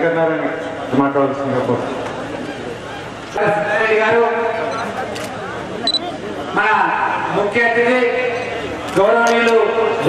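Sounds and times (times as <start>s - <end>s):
man speaking over public address: 0.0s - 2.0s, 3.3s - 5.0s, 6.1s - 10.0s.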